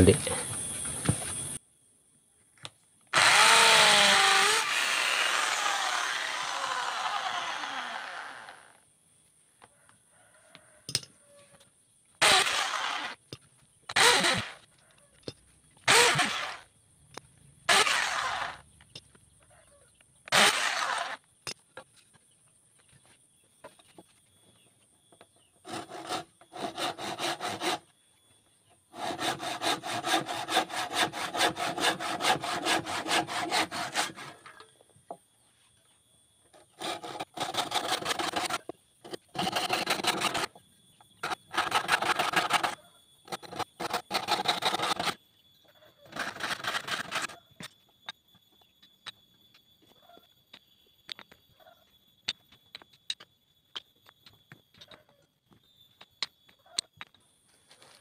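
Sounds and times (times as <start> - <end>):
handsaw cutting wood: 3.2 - 8.7, 12.2 - 13.2, 13.9 - 14.6, 15.9 - 16.6, 17.7 - 18.6, 20.3 - 21.2, 25.6 - 27.9, 28.9 - 34.6, 36.7 - 40.5, 41.2 - 45.2, 46.1 - 47.4.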